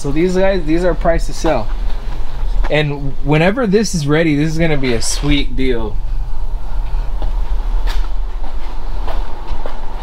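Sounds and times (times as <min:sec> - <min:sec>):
low rumble: 0:00.0 - 0:10.0.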